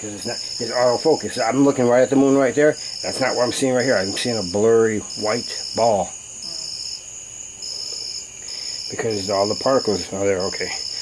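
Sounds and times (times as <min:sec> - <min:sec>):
insects trilling: 0:00.0 - 0:11.0
lower pulsing insect trill: 0:00.0 - 0:11.0.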